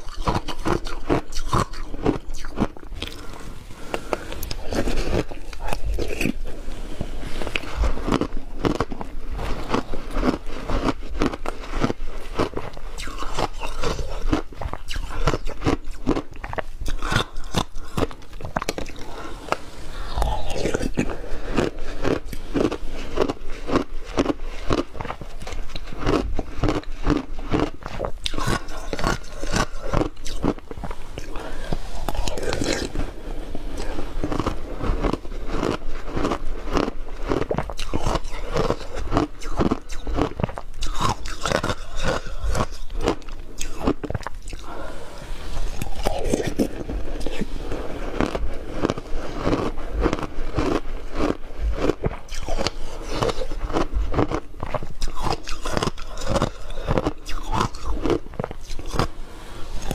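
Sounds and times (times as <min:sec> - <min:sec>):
ice crunching and chewing: 0:00.0 - 0:59.9.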